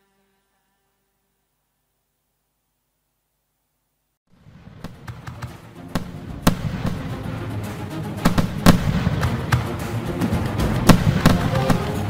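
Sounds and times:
fireworks banging: 4.3s - 12.0s
background music: 4.4s - 12.0s.

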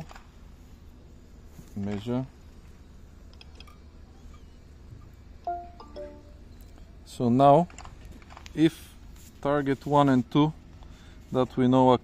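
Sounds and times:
electronic chime: 5.5s - 6.6s.

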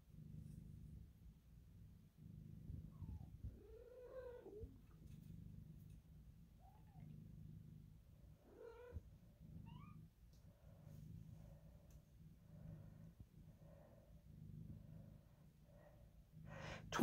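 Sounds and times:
cat purring: 0.0s - 17.0s.

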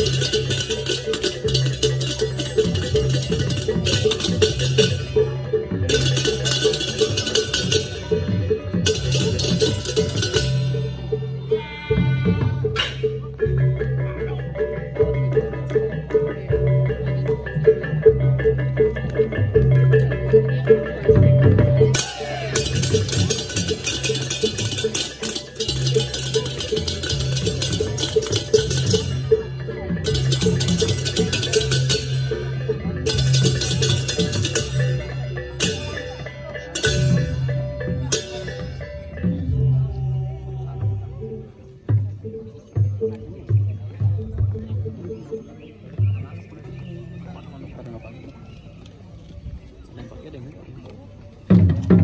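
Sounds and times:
gamelan ensemble playing: 0.0s - 49.5s, 50.1s - 52.0s.

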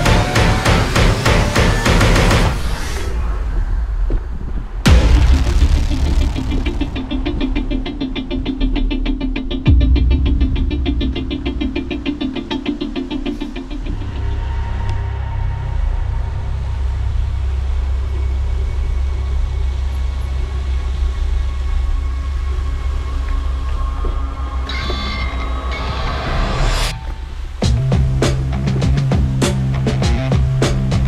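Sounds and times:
wind rumble on microphone: 2.6s - 7.8s.

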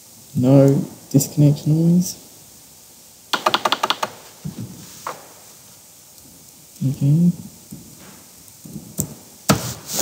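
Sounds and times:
laptop keyboard clicks: 3.4s - 4.3s.

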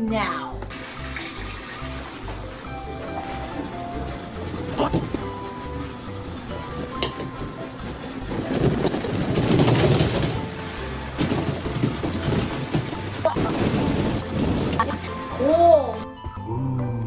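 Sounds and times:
plastic balls knocking: 0.6s - 15.4s
plastic balls pouring into water: 0.7s - 16.0s.

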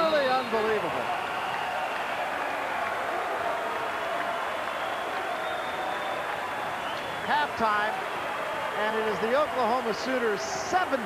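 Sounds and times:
crowd cheering and applause: 0.0s - 11.0s.

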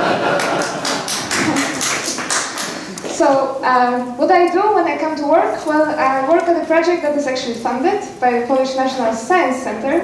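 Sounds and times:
sharp hand claps: 0.4s - 3.1s.

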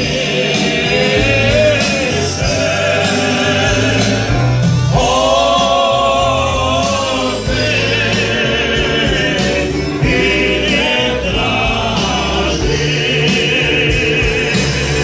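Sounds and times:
live band with accordion: 0.0s - 15.0s
men singing together: 0.0s - 15.0s.

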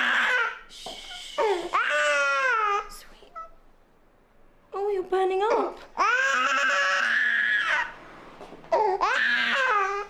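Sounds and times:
infant crying: 0.0s - 0.6s, 1.4s - 3.5s, 6.0s - 7.9s, 8.7s - 10.0s.

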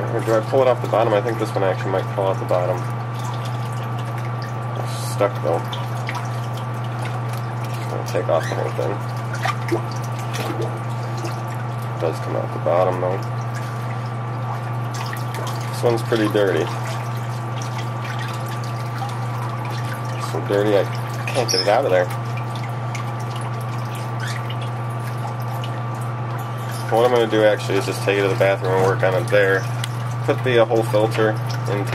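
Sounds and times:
steady low hum: 0.0s - 31.9s
water dripping and trickling: 0.0s - 31.9s.

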